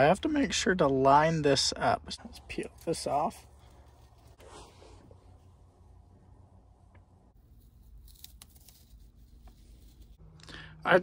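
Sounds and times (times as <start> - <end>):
peeling and crinkling of paper film: 7.4 - 10.2.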